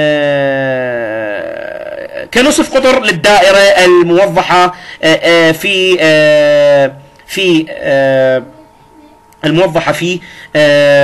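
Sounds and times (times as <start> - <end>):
man's drawn-out hesitation vowel: 0.0 - 2.9.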